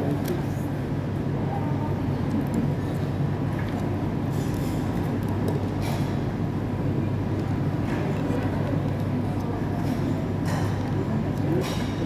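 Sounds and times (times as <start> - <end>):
crowd and ventilation rumble: 0.0 - 12.0.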